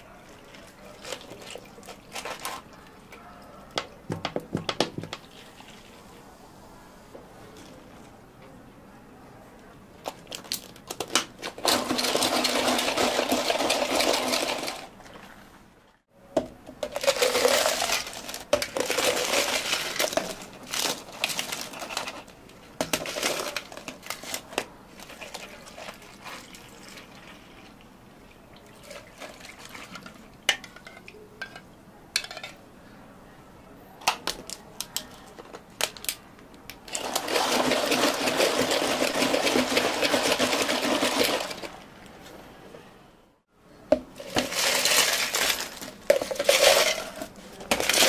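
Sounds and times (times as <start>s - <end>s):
ice cubes clinking into cups: 0.9s - 2.8s, 10.0s - 15.3s, 16.8s - 27.3s, 36.9s - 41.8s, 44.2s - 48.0s
drinks shaken with ice rattling: 11.5s - 15.3s, 16.9s - 22.3s, 36.9s - 41.8s, 44.2s - 48.0s.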